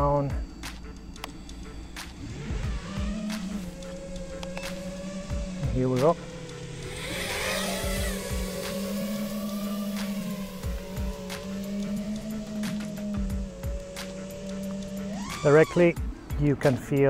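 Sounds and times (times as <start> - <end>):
background music: 0.0 - 17.0
quadcopter motors whining: 0.0 - 17.0.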